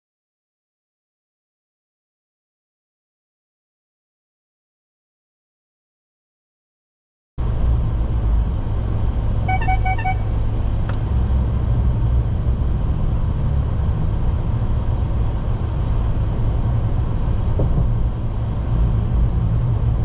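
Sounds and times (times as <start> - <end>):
car road rumble inside cabin: 7.4 - 20.0
short high beeps: 9.5 - 10.3.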